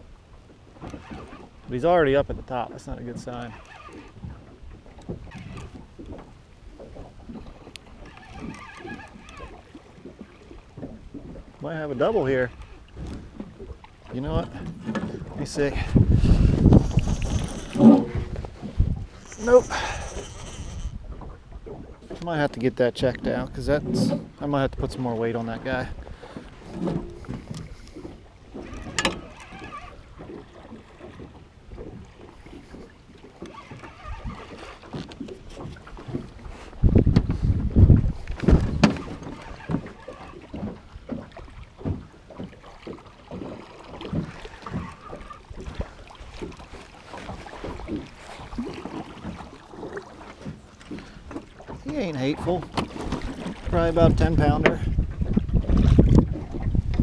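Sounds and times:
low rumble of wind: 0.0 - 57.0
water moving around boat: 0.0 - 57.0
wind buffeting microphone: 0.7 - 42.2, 44.0 - 57.0
fishing reel clicking: 3.4 - 4.2, 7.7 - 9.6, 16.7 - 17.8, 19.2 - 21.0, 28.7 - 30.0.

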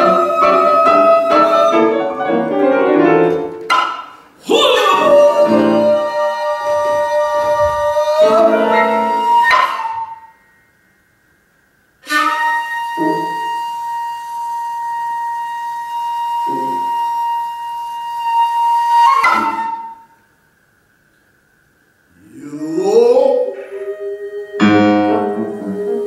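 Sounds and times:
bamboo flute playing: 0.0 - 10.6, 12.0 - 20.3, 23.5 - 26.0.

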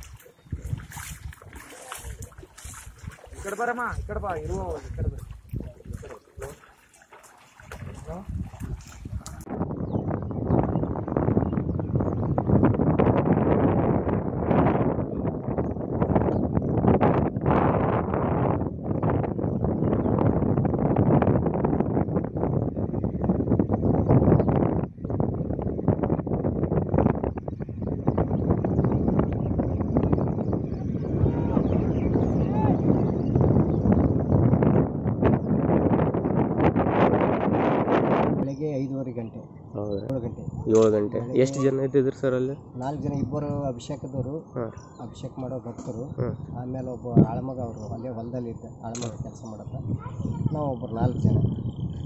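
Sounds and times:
wind buffeting microphone: 0.0 - 52.0.

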